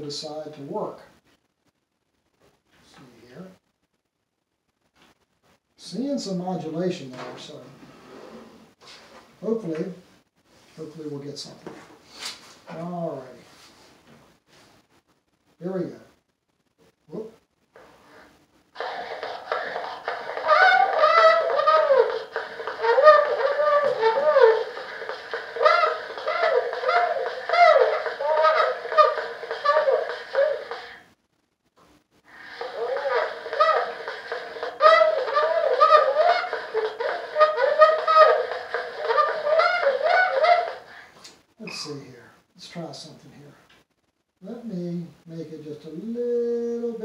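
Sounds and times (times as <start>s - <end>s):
thin recorded man's voice: 0.0s - 1.1s, 2.8s - 3.6s, 5.8s - 7.8s, 9.4s - 10.0s, 10.8s - 11.8s, 12.7s - 13.5s, 15.6s - 16.1s, 17.1s - 17.4s, 41.6s - 43.6s, 44.4s - 47.0s
steady hiss: 4.8s - 31.2s, 31.8s - 47.0s.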